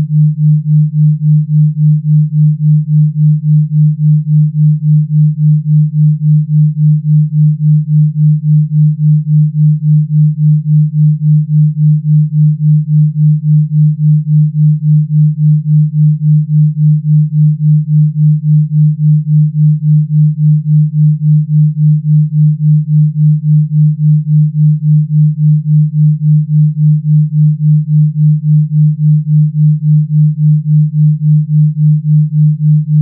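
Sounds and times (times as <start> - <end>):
low pulsing sine tone: 0.0 - 33.0.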